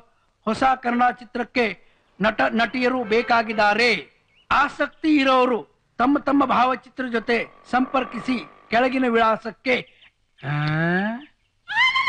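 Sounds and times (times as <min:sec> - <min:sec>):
man's wordless call: 0:02.2 - 0:05.1, 0:06.0 - 0:10.7.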